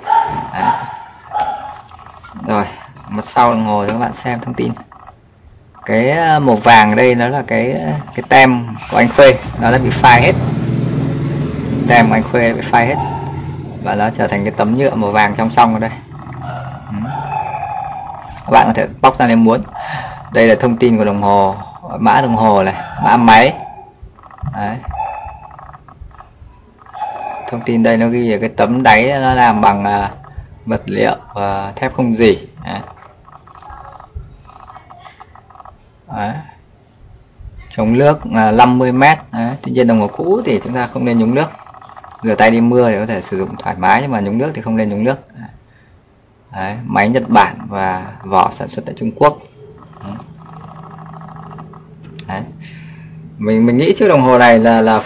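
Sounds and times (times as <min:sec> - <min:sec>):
man speaking: 0:00.0 - 0:01.0, 0:02.3 - 0:04.8, 0:05.8 - 0:10.4, 0:11.8 - 0:13.2, 0:13.8 - 0:17.3, 0:18.3 - 0:23.7, 0:27.4 - 0:33.0, 0:37.7 - 0:41.6, 0:42.2 - 0:45.6, 0:46.5 - 0:50.4, 0:52.2 - 0:55.0.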